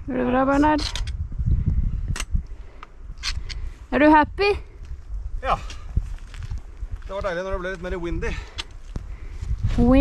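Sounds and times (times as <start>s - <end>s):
wind buffeting microphone: 0.0s - 10.0s
footsteps on rocky path: 4.8s - 10.0s.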